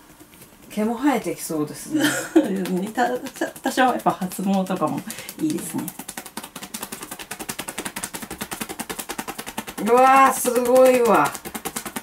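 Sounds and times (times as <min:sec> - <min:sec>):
hands patting a head: 0:02.0 - 0:12.0.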